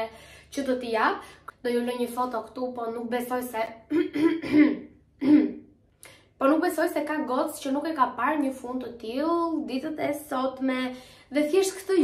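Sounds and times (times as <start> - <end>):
woman coughing: 3.9 - 5.6.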